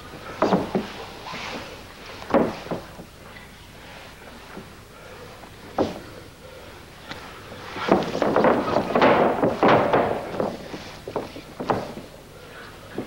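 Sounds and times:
bodies thudding on ring canvas: 0.3 - 1.3, 2.2 - 3.1, 7.7 - 12.2.

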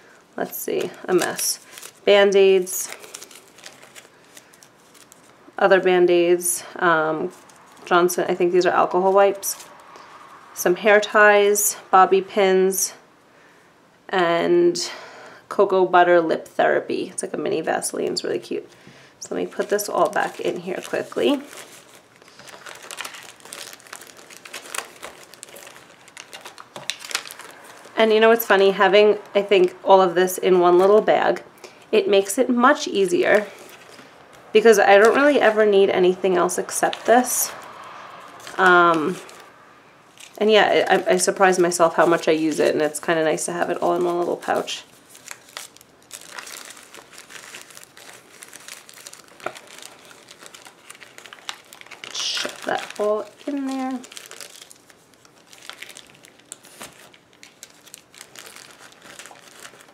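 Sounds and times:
plastic wrappers crinkling: 0.1 - 10.0, 18.0 - 59.9.

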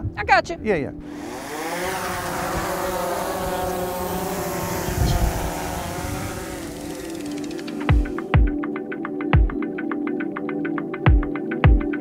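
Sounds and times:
drone propellers buzzing: 1.0 - 8.6.

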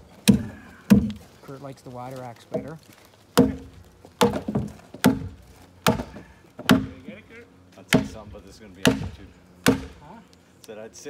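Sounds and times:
axe chopping into log: 0.2 - 1.2, 3.4 - 7.1, 7.9 - 10.1.

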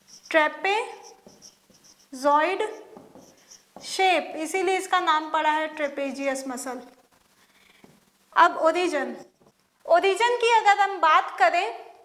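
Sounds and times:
marker writing on whiteboard: 0.0 - 4.0, 9.0 - 9.6.

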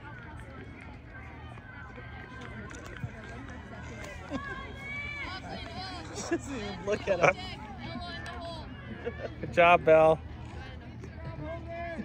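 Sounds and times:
distant voices chattering: 0.0 - 12.0.

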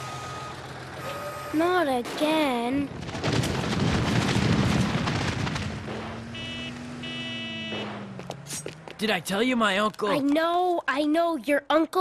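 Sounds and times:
short high electronic tones: 6.4 - 7.8.

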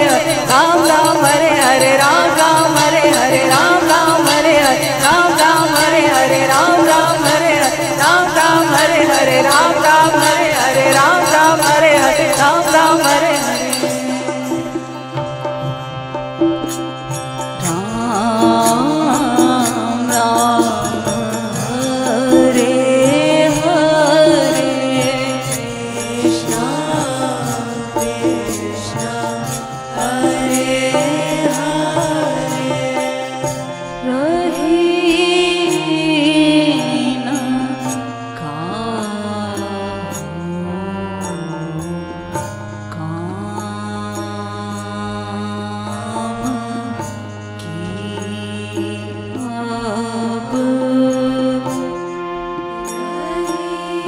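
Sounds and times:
harmonium sustained notes: 0.0 - 54.0
person singing with vibrato: 0.0 - 54.0.

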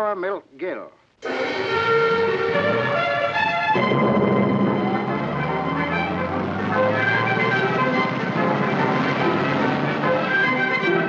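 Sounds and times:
film score music: 1.2 - 11.0
motorcycle and car engines running: 1.6 - 11.0.

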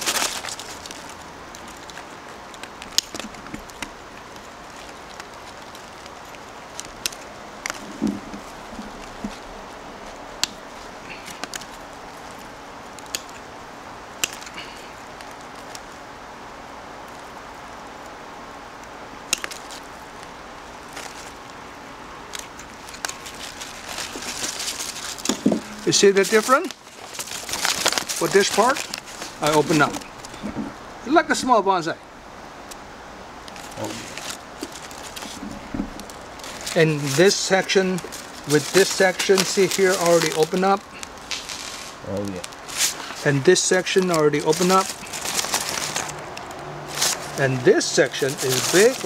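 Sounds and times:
scissors snipping twigs: 0.0 - 13.5, 14.1 - 16.0, 18.8 - 21.6, 22.2 - 30.6, 33.4 - 49.0
foliage rustling: 0.0 - 49.0
low background hiss: 0.0 - 49.0.

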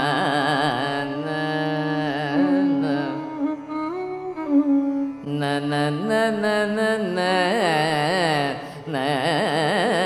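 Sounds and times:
man singing ornamented notes: 0.0 - 4.1
violin melody: 2.2 - 5.8.

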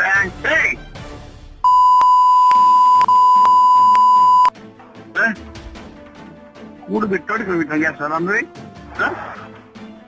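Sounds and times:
censor bleep: 1.7 - 4.5.

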